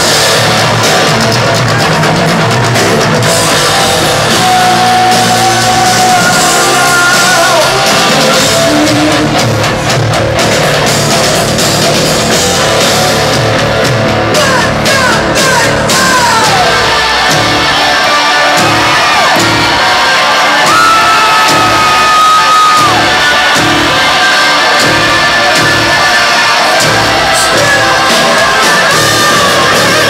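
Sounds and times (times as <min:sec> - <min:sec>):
steady drum beat: 0:00.0 - 0:30.0.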